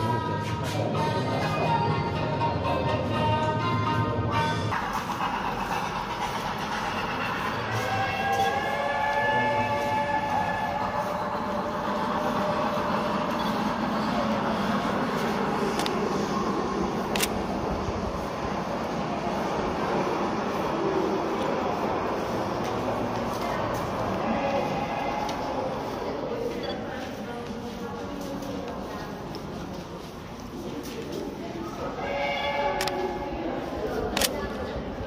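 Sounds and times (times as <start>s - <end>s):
music: 0.0s - 5.8s
steady rushing noise: 4.3s - 31.7s.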